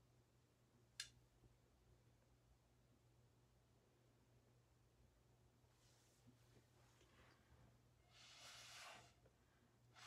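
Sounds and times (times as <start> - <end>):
breath blown through a straw: 8.0 - 9.2.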